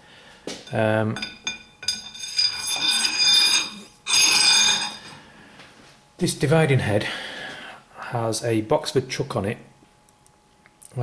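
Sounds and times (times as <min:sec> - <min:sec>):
metal scraping with ringing squeal: 0:01.2 - 0:05.2.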